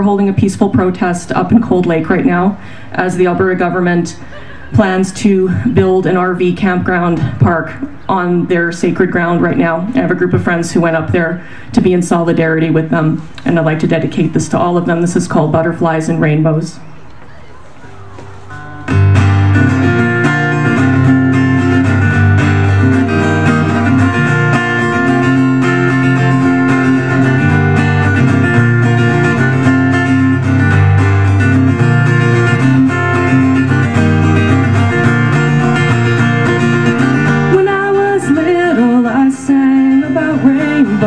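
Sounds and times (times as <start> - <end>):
acoustic guitar strumming: 0.0 - 16.5, 17.8 - 41.0.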